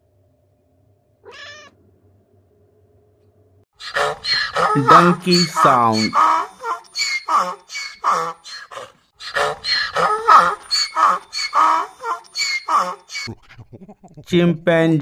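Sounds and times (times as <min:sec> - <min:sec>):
donkey braying: 0:03.8 - 0:14.3.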